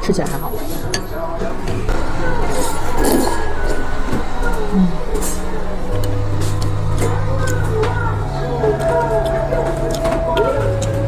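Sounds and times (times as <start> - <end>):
background music with bass notes: 0.8 - 11.0.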